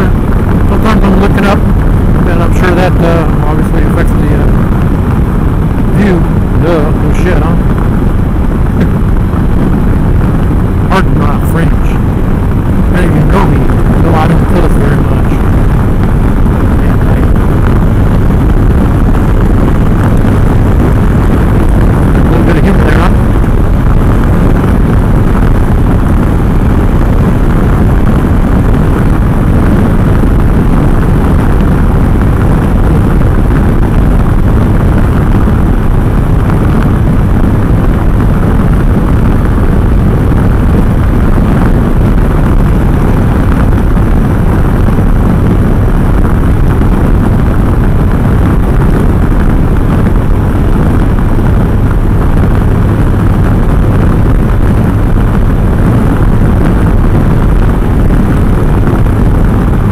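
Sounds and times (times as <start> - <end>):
engine rumble: 0.0 - 59.9
wind noise: 0.0 - 59.9.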